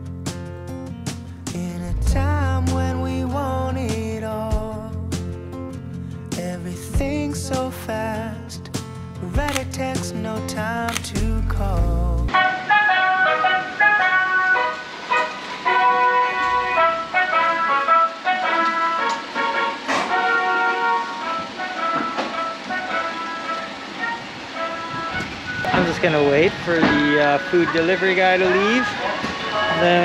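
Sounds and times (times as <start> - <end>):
background music: 0.0 - 30.0
man talking: 25.7 - 29.1, 29.7 - 30.0
jingle through tinny loudspeaker: 25.7 - 30.0.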